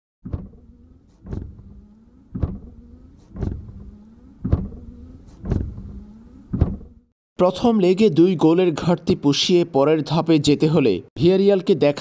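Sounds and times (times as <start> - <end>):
faint pitch-bending hum: 0.4 - 7.1.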